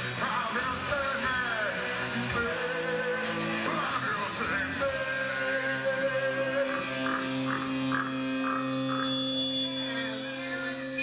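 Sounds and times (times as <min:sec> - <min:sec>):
electric guitar and bass droning: 0:00.0 - 0:11.0
pulsing high tone: 0:05.0 - 0:11.0.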